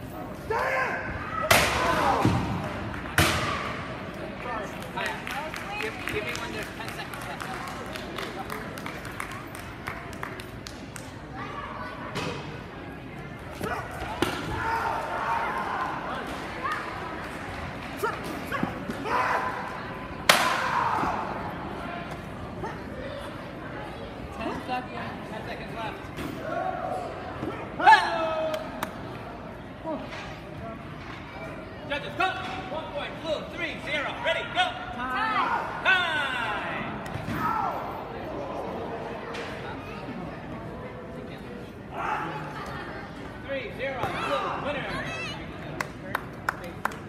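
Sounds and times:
voices and chatter: 0.0 - 47.0.

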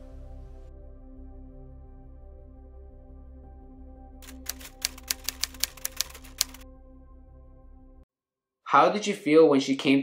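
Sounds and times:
soft ambient music: 0.0 - 8.1
typewriter keys clacking: 4.2 - 6.6.

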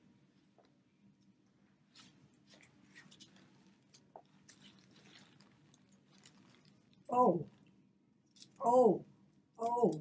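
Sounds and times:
faint room hum: 0.0 - 10.0
soft clicks and rustles: 0.3 - 8.5.

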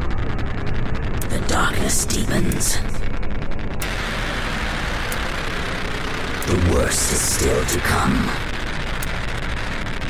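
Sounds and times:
low bass: 0.0 - 10.0
rapid stuttering electronic pulse: 0.0 - 10.0
white noise wash: 0.0 - 10.0.

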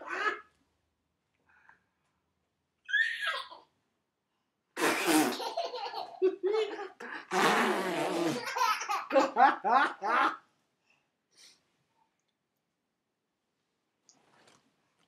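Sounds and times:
baby squealing: 2.9 - 3.6
lips blowing raspberries: 7.3 - 8.4.

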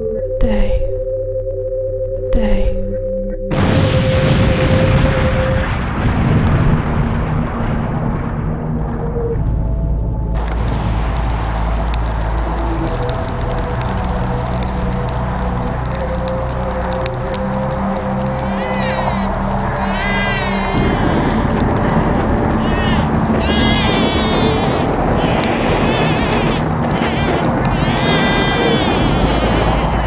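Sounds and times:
low sustained tones: 0.0 - 26.9
voices: 0.3 - 1.0, 2.3 - 2.9.

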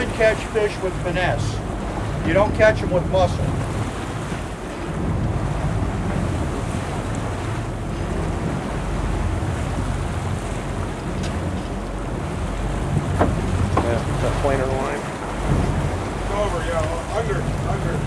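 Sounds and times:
boat engine humming: 0.0 - 18.0
sea washing around hull: 0.0 - 18.0
wind buffeting microphone: 0.0 - 18.0.

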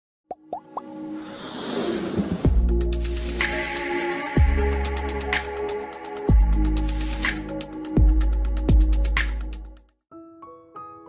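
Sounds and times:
whoosh: 1.2 - 2.8.

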